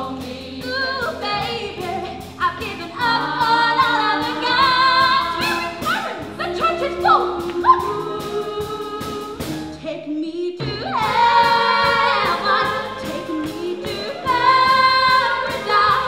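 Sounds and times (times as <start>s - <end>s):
live band accompaniment: 0.0s - 10.0s, 10.6s - 16.0s
girls' chorus singing: 10.6s - 16.0s.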